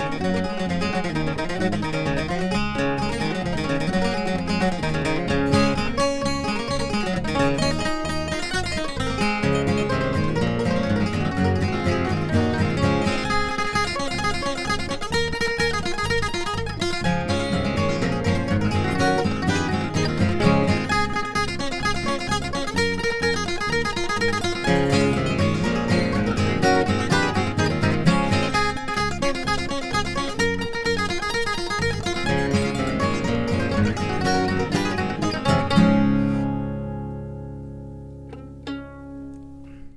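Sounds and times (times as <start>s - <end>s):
acoustic guitar flatpicking: 0.0s - 39.9s
bass guitar: 0.0s - 39.9s
mandolin: 0.0s - 39.9s.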